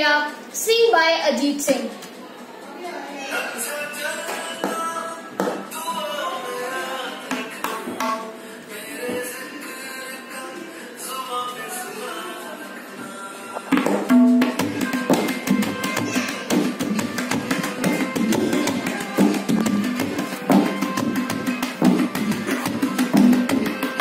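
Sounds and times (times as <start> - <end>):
tabla drums played by hand: 13.7 - 24.0.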